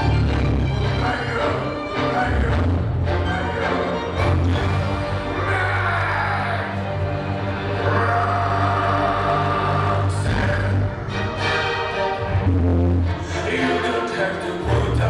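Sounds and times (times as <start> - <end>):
electronic tango music: 0.0 - 5.4.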